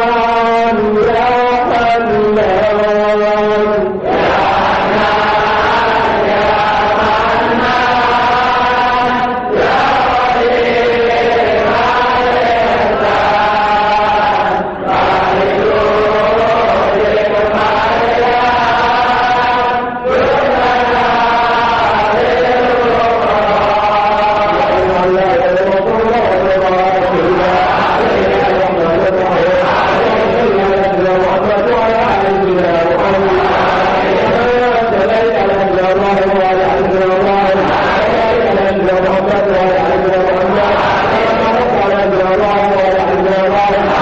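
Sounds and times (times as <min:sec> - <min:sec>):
voices chanting: 0:00.0 - 0:44.0.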